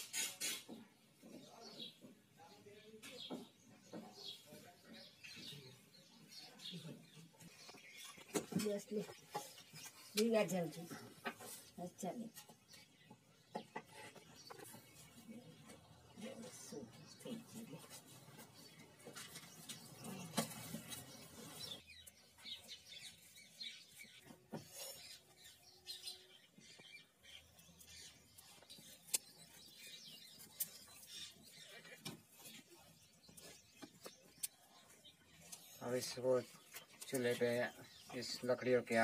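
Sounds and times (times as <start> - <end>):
bird chirps: 18.4 - 39.0.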